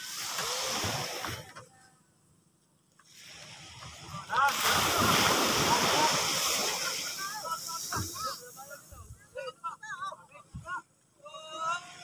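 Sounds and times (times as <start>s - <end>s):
sea surf rushing on beach: 0.0s - 1.5s, 3.1s - 9.1s
men calling out: 4.3s - 12.0s.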